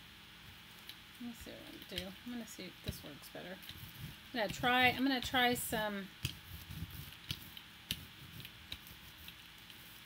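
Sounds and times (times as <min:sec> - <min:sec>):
brayer rolling over paper: 0:01.4 - 0:10.0.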